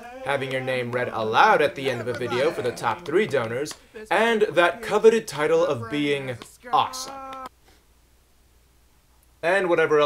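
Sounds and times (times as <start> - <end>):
person singing high note: 0.0 - 1.0, 1.7 - 3.3, 4.0 - 7.5.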